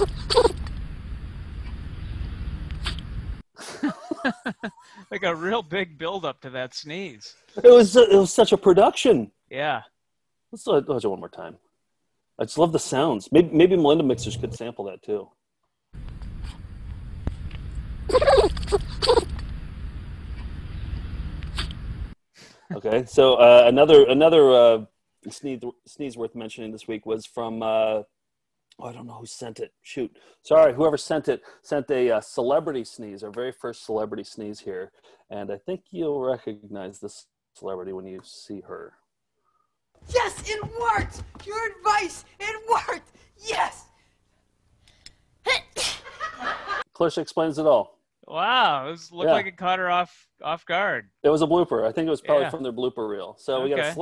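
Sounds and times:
wind rumble on microphone: 0:00.7 - 0:03.4, 0:19.3 - 0:22.1
dog sneezing: 0:45.5 - 0:46.1.

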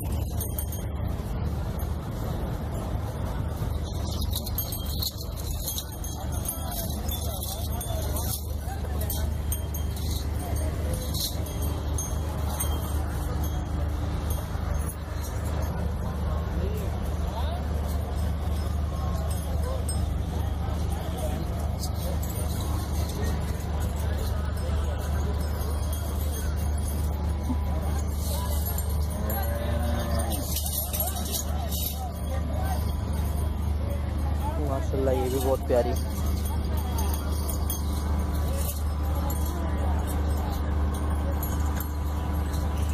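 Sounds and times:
faint background voices: 0:00.0 - 0:42.9
low machine hum: 0:00.0 - 0:42.9
people talking faintly: 0:00.0 - 0:42.9.

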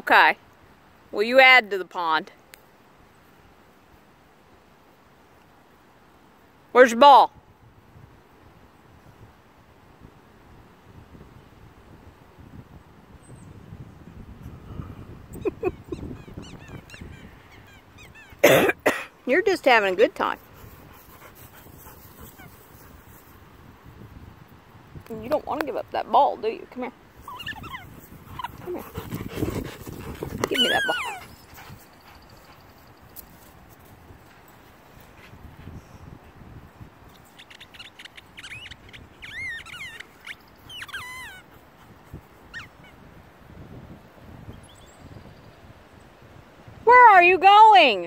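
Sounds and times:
faint outdoor background: 0:00.0 - 0:48.0
dog sounds: 0:20.2 - 0:23.0, 0:27.2 - 0:32.8, 0:37.3 - 0:42.9.

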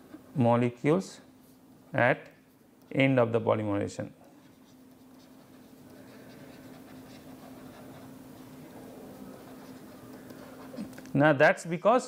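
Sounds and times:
steady low hum: 0:00.0 - 0:12.0
stylus scratching on tablet screen: 0:04.4 - 0:11.0.

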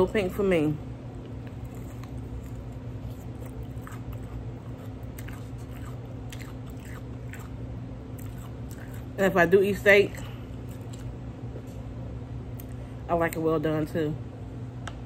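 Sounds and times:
steady low hum: 0:00.0 - 0:15.0
person chewing: 0:01.3 - 0:09.2, 0:10.2 - 0:11.3.

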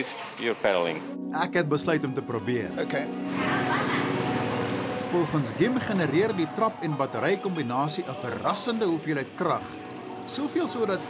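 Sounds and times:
background music with low notes: 0:00.0 - 0:11.0
street noise: 0:02.6 - 0:11.0.

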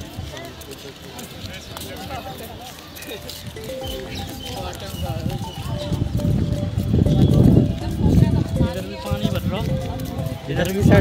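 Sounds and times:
indistinct voices: 0:00.0 - 0:11.0
music-like held tones: 0:03.2 - 0:11.0.

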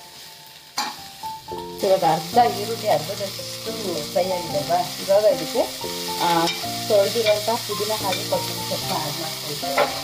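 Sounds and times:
background music: 0:00.0 - 0:10.0
vegetables sizzling in hot oil: 0:00.0 - 0:10.0
steel ladle scraping a pan: 0:09.7 - 0:10.0.

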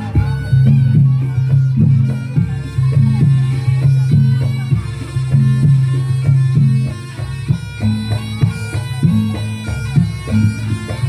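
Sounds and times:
shrill reedy shawm melody: 0:00.0 - 0:11.0
steady drum strokes: 0:00.0 - 0:11.0.

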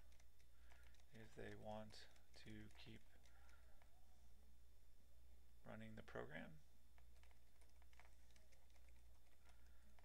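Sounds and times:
computer keyboard clicks: 0:00.0 - 0:03.6, 0:07.0 - 0:10.0.

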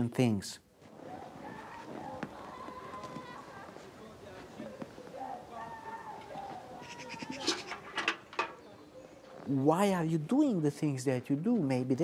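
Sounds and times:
livestock bleating faintly: 0:05.3 - 0:08.0
metal bucket clanking: 0:07.4 - 0:08.6.

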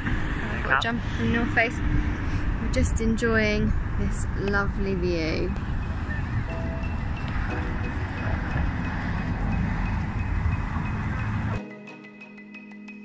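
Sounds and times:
wind rumble on microphone: 0:00.0 - 0:11.6
mallet percussion music: 0:05.8 - 0:13.0.

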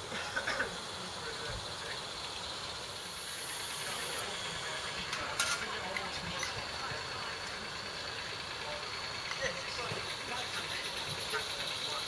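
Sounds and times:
steam hissing from model locomotive: 0:00.0 - 0:12.0.

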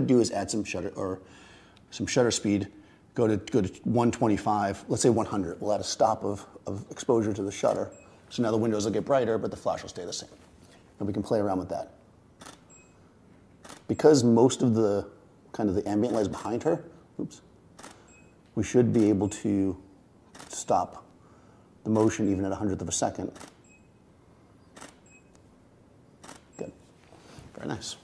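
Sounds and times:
camera shutter click: 0:12.4 - 0:12.8, 0:17.8 - 0:18.0, 0:20.3 - 0:20.6, 0:23.3 - 0:23.7, 0:24.8 - 0:25.3, 0:26.2 - 0:26.6
short high flash beep: 0:12.7 - 0:13.0, 0:17.9 - 0:18.4.

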